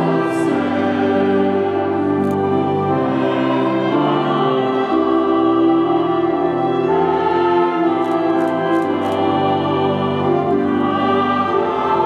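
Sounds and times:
choir singing a hymn: 0.0s - 12.0s
violin: 0.0s - 12.0s.

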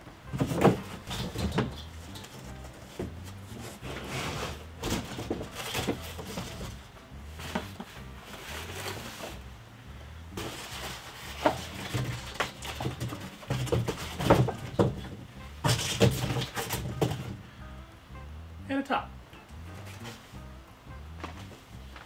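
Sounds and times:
quiet background music: 0.0s - 22.0s
metal parts knocking and clunking: 0.3s - 4.1s, 4.8s - 7.7s, 10.4s - 17.4s.

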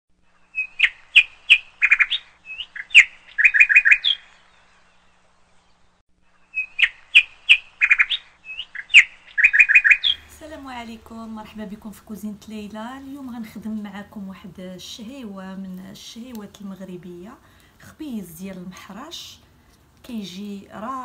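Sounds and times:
bird chirping and trilling: 0.4s - 12.7s.

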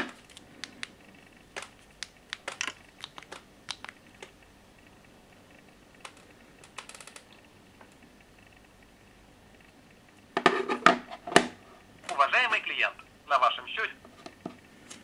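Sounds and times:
phone touchscreen clicks and taps: 1.6s - 4.4s.

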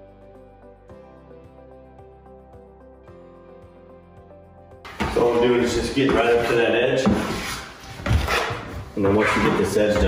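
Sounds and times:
soft background music: 0.0s - 10.0s
man talking: 5.1s - 7.2s, 9.0s - 10.0s
squeegee scraping paste on wood: 5.2s - 10.0s.

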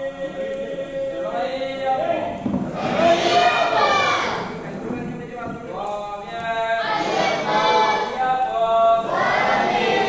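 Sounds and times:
men chanting: 0.0s - 4.6s, 6.3s - 10.0s.

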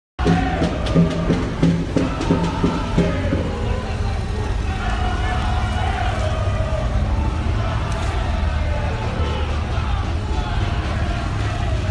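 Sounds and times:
rhythmic chanting to a beat: 0.2s - 11.9s
bus and motorcycle engine rumble: 0.4s - 11.9s.

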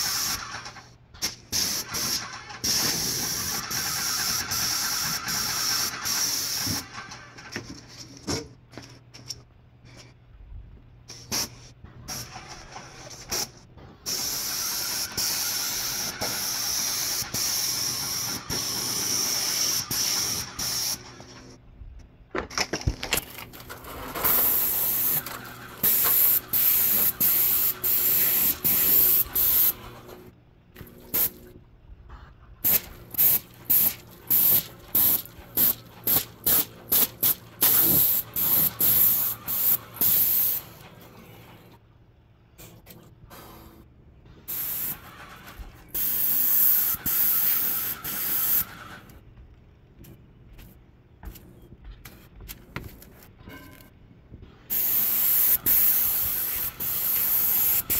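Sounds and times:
paint spray gun hissing: 0.0s - 0.6s, 1.5s - 7.0s, 14.1s - 21.2s, 24.4s - 29.8s, 32.6s - 40.7s, 44.5s - 45.2s, 45.9s - 48.8s, 54.7s - 57.9s.

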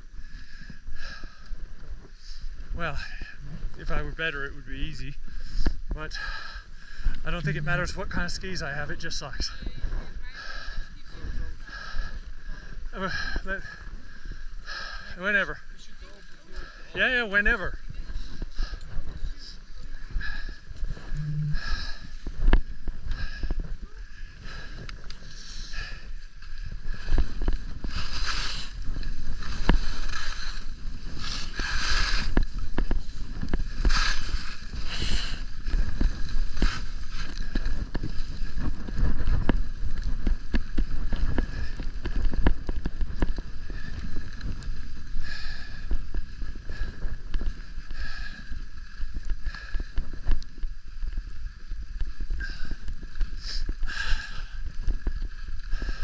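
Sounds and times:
wind rumbling on microphone: 0.0s - 56.0s
skis scraping over snow: 7.2s - 9.3s, 26.8s - 45.1s.

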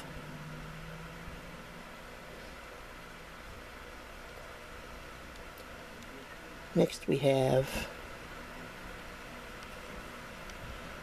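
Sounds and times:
background hiss: 0.0s - 11.0s
faint low hum: 0.0s - 11.0s.

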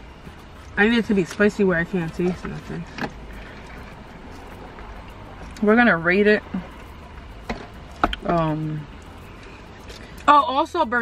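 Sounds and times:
low rumble of car interior: 0.0s - 11.0s.

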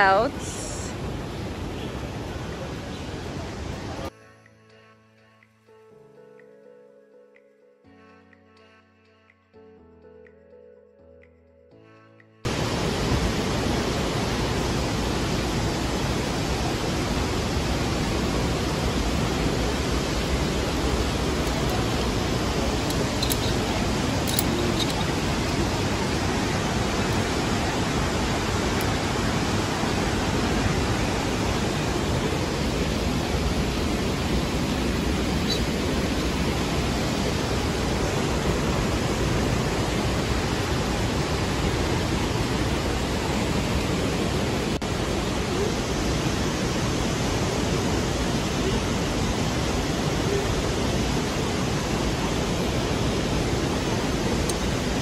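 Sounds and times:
waterfall rushing: 12.5s - 55.0s.

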